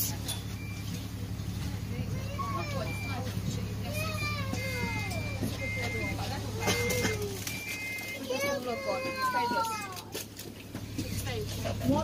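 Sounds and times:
bus hum: 0.0 - 12.0
passengers' voices: 0.0 - 12.0
child shouting: 3.9 - 5.6, 8.2 - 10.1.

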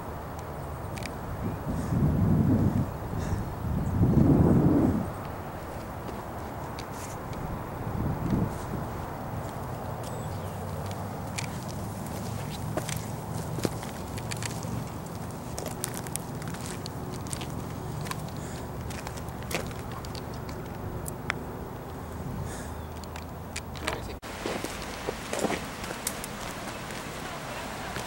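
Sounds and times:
footsteps crunching on rocky trail: 5.2 - 22.0, 22.9 - 28.0.

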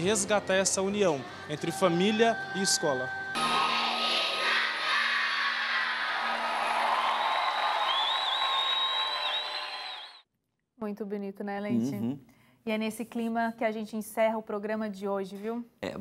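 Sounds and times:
high wavering whistle: 1.5 - 10.2
audience applauding and cheering: 3.2 - 10.2.

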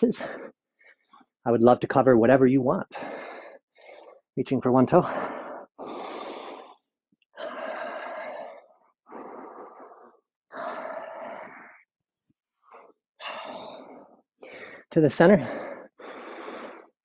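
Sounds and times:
person breathing deeply: 2.9 - 4.3, 5.0 - 11.9, 12.6 - 17.0.

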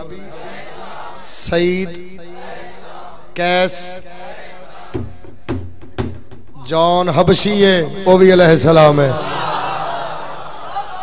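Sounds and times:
man chanting over loudspeaker: 1.2 - 2.4, 3.3 - 4.9, 6.6 - 9.2.

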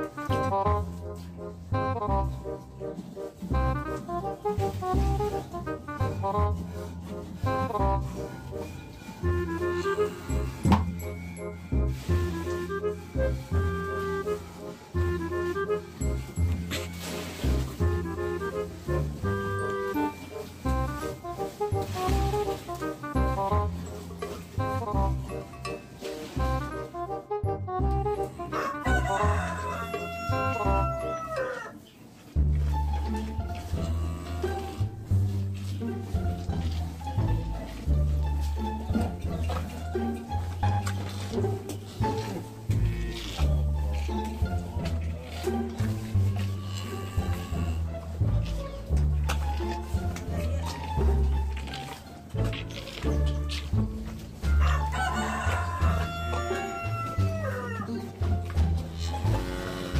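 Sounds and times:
rooster crowing: 28.5 - 31.8, 54.5 - 58.0.

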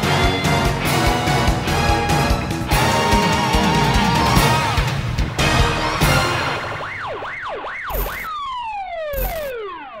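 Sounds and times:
siren wailing: 6.8 - 10.0.

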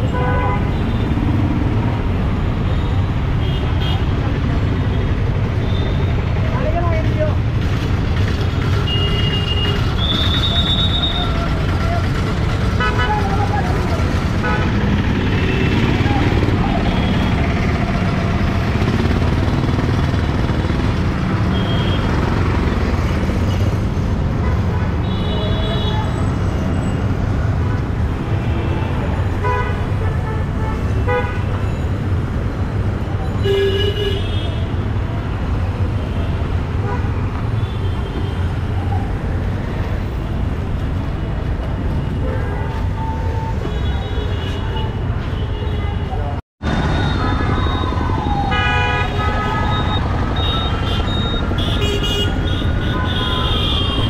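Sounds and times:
traffic engine rumble: 0.0 - 54.0.

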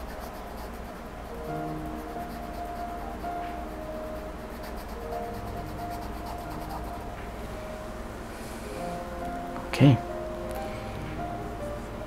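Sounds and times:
paintbrush scratching canvas: 0.0 - 3.3, 4.2 - 7.0
soft background music: 0.0 - 12.0.

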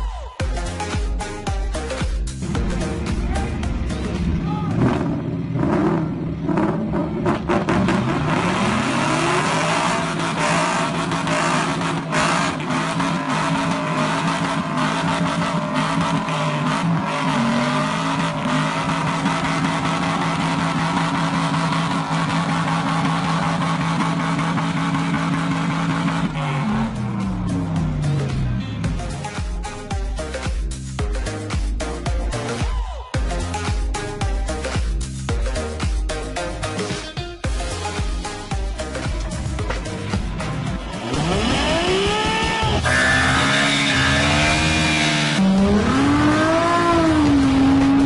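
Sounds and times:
car engines revving hard: 2.4 - 32.6, 37.5 - 48.0.

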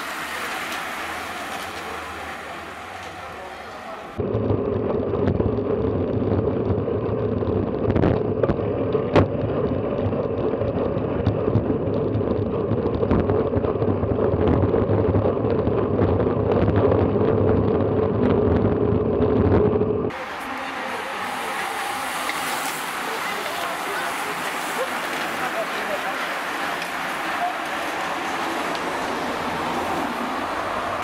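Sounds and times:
wind and road rumble: 0.0 - 31.0.

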